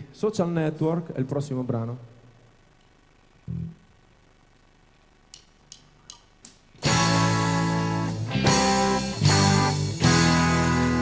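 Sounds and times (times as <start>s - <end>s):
drumstick count-in clicks: 5.3s - 6.6s.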